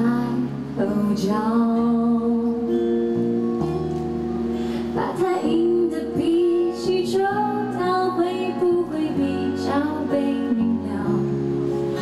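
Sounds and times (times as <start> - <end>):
woman singing into microphone: 0.0 - 3.9, 4.6 - 12.0
acoustic guitars: 0.0 - 12.0.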